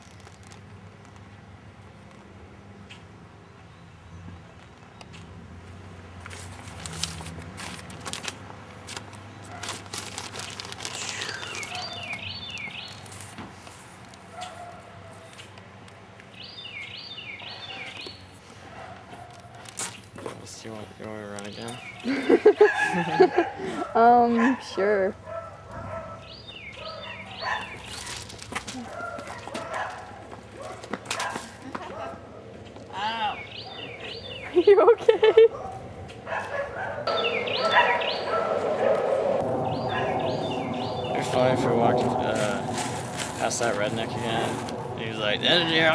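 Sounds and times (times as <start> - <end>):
bird chirping: 11.2 - 13.2, 16.2 - 18.3, 20.8 - 22.6, 26.2 - 28.2, 33.2 - 34.8, 37.1 - 41.9
bird whistling: 37.1 - 38.5, 39.7 - 41.2.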